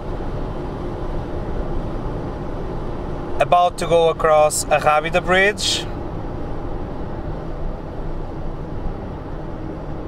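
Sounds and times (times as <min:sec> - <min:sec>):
faint engine drone: 0:00.0 - 0:10.0.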